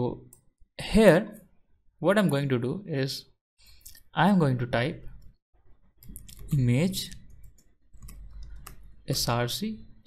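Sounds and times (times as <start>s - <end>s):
keyboard typing: 6.0s - 9.3s.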